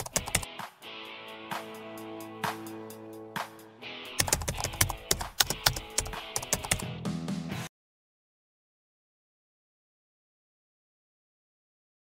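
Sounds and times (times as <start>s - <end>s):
keyboard typing: 0.0s - 0.5s, 4.2s - 6.9s.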